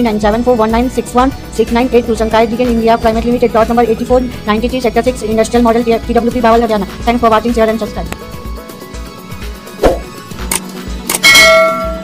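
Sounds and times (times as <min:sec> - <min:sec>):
background music with steady beat: 0:00.0 - 0:12.0
bell-like ding: 0:11.2 - 0:12.0.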